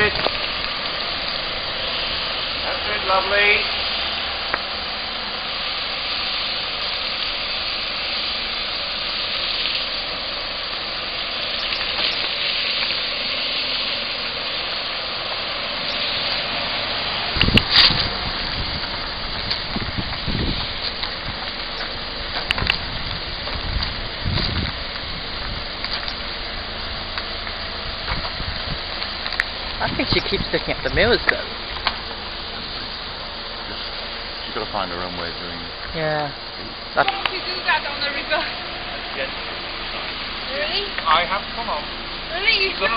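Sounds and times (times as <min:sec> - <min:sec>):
steady background hiss: 0:00.0 - 0:42.9.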